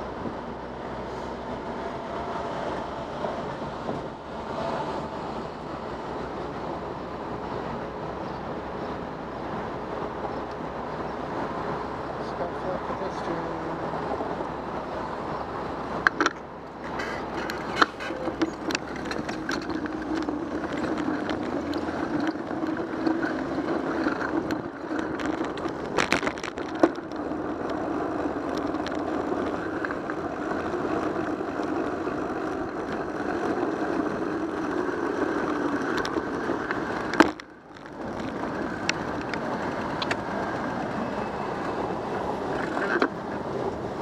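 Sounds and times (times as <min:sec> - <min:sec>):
bicycle tyre noise on pavement: 0:00.0 - 0:44.0
wind noise: 0:00.0 - 0:44.0.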